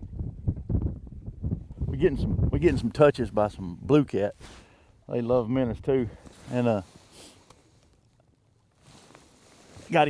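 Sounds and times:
wind buffeting microphone: 0.0s - 4.2s.

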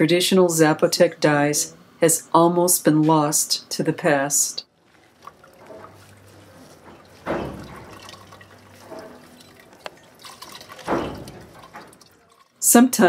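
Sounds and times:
liquid sloshing and dripping: 4.7s - 12.7s.

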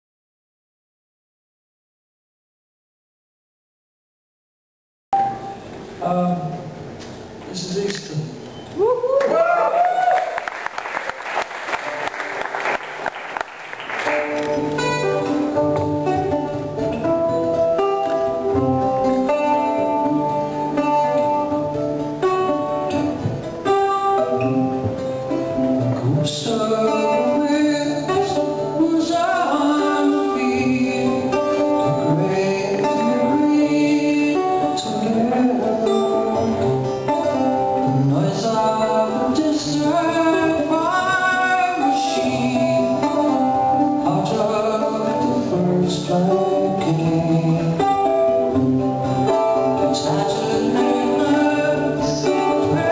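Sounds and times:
guitar plucking a melody: 5.2s - 6.0s, 13.8s - 52.9s.

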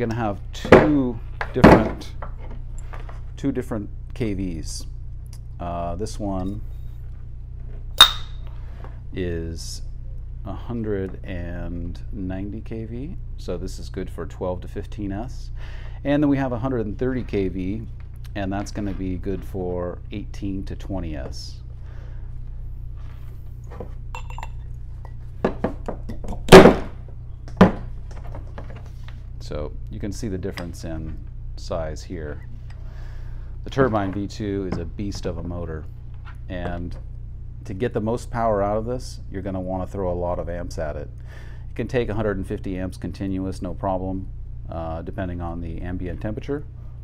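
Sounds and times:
sharp metallic clack with ring: 8.0s - 8.4s
loud thunk: 26.5s - 27.0s.

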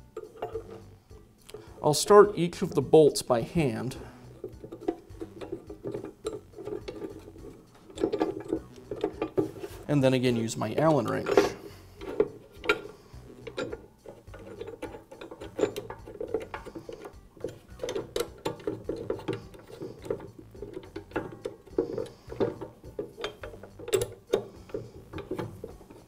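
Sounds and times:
allen wrench metallic clicks: 4.2s - 9.7s, 10.9s - 26.0s.

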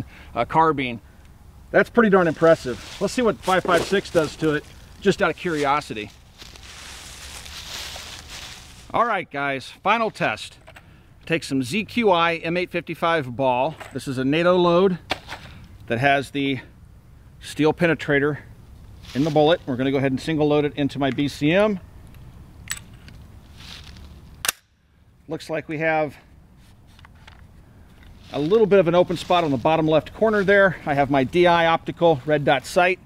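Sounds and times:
low steady rumble: 0.0s - 33.0s
rustling in dry leaves: 1.9s - 9.0s, 18.8s - 19.8s, 23.4s - 24.3s, 27.7s - 31.6s
sharp metallic click: 22.6s - 23.1s, 24.4s - 24.7s.

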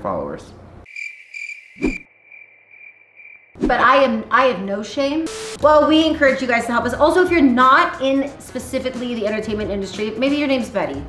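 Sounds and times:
cricket chirping: 0.8s - 3.6s.

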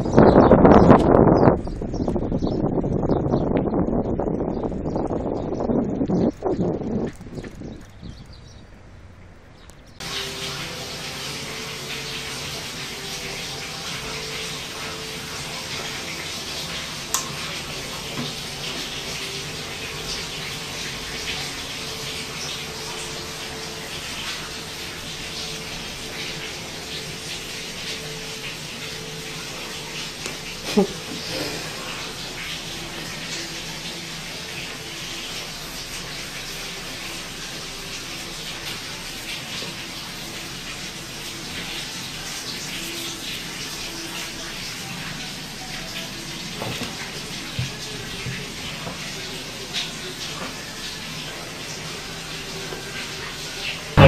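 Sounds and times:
steady rushing hiss: 7.1s - 54.0s.

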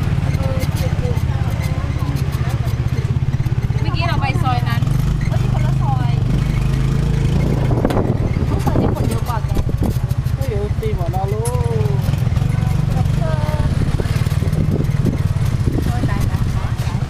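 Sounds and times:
motor scooter engine running: 0.0s - 17.0s
voices: 0.0s - 17.0s.

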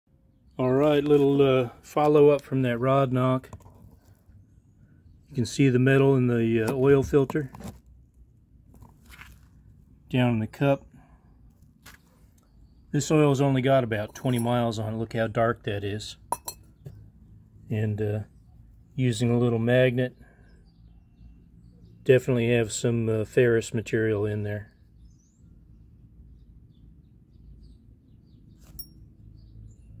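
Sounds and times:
bird chirps: 20.1s - 22.1s, 24.6s - 30.0s.

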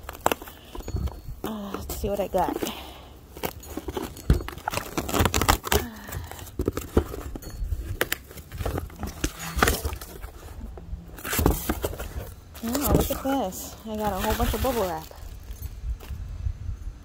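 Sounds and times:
packing tape tearing: 0.0s - 0.9s, 3.4s - 10.6s
cardboard flaps scraping and knocking: 6.5s - 13.4s.

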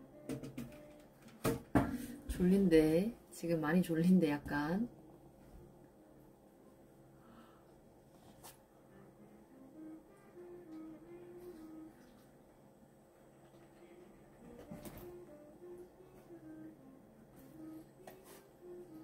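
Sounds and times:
faint background music: 0.0s - 19.0s.

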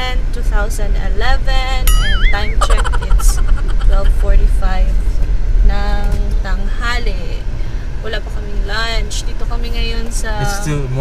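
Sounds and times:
car cabin rumble: 0.0s - 11.0s
woman's voice: 0.0s - 11.0s.

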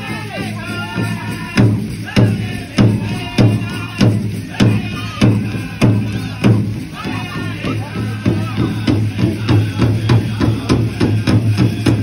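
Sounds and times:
big drum steady beat: 0.0s - 12.0s.

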